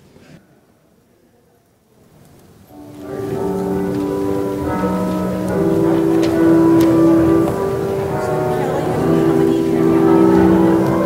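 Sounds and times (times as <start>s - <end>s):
church organ chords: 2.7s - 11.0s.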